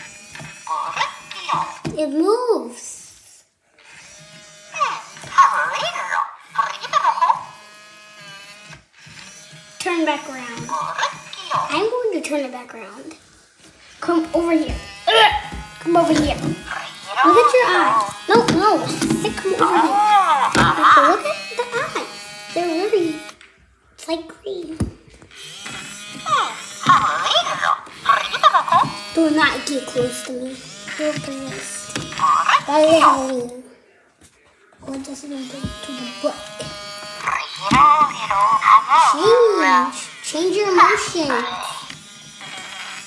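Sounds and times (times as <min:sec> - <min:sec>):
small motor whirring: 0:00.0 - 0:02.2, 0:03.0 - 0:23.4, 0:25.3 - 0:33.6, 0:35.1 - 0:43.0
toy high-pitched voice: 0:00.6 - 0:03.4, 0:04.6 - 0:07.8, 0:09.8 - 0:13.0, 0:14.0 - 0:23.4, 0:26.2 - 0:33.6, 0:34.9 - 0:41.9.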